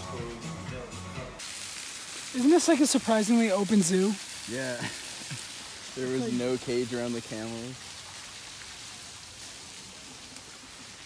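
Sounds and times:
even outdoor hiss: 0.0 - 11.0.

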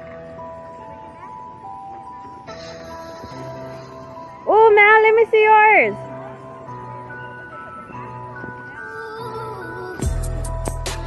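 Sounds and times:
melody of held notes: 0.0 - 11.0
steady bass line: 10.0 - 11.0.

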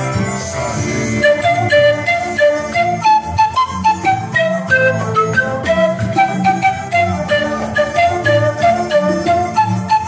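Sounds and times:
lower accompaniment: 0.0 - 10.0
panpipe melody: 0.0 - 10.0.

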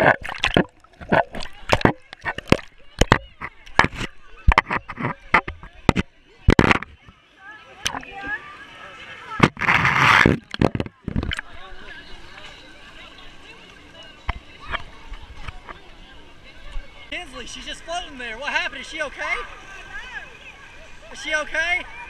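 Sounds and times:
pool water splashing: 0.0 - 22.0
children's voices: 1.3 - 17.9, 19.2 - 21.1.

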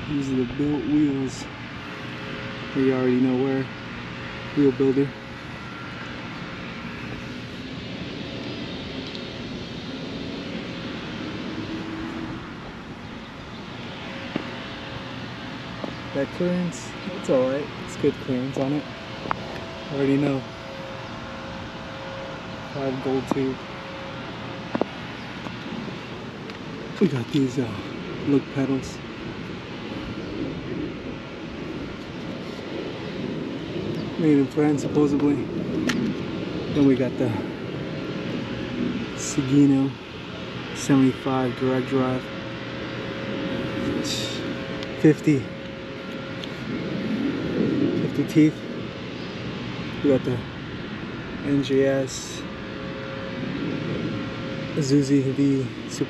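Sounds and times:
distant engine noise: 0.0 - 56.0
outdoor rumble and hiss: 0.0 - 56.0.

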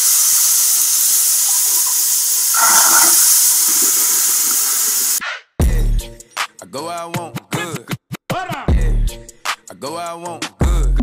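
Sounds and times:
water running into sink: 0.0 - 5.2
water splash: 2.4 - 5.2.

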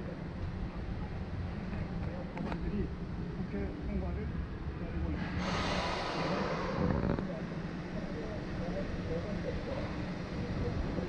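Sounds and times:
rush of hiss: 5.4 - 6.9.

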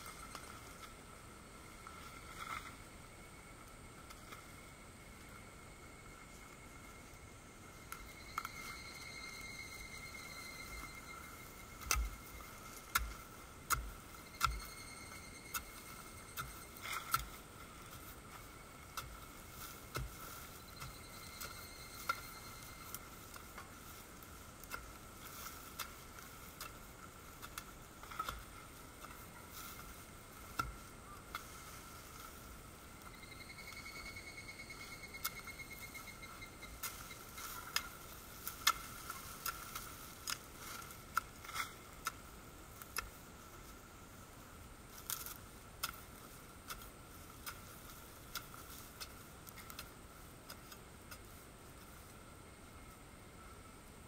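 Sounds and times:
faint high-pitched whine: 0.0 - 54.0
stick and hands clearing soil: 8.0 - 43.8, 44.8 - 52.2.

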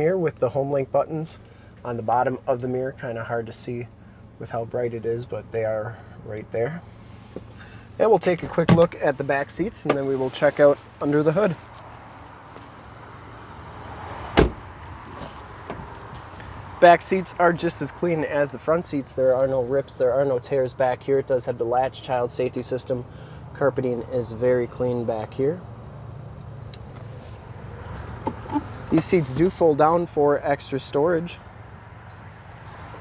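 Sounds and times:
car door shutting: 8.2 - 9.0, 14.3 - 16.3, 27.9 - 29.6.

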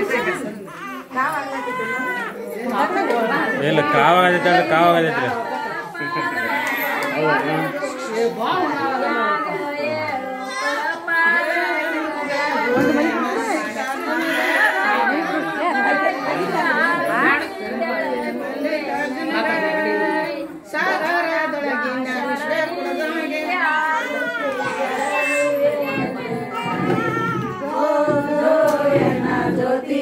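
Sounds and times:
women chattering: 0.0 - 30.0
women singing a lullaby: 9.0 - 30.0.

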